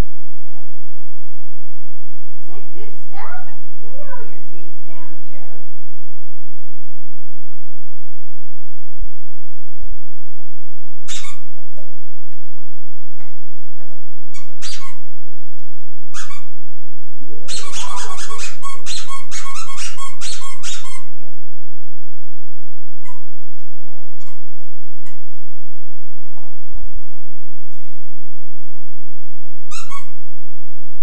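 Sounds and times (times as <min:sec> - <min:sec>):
steady electrical hum: 0:00.0 - 0:31.0
high-pitched squeaks: 0:11.1 - 0:11.5, 0:14.3 - 0:15.0, 0:16.2 - 0:16.5, 0:17.5 - 0:21.2.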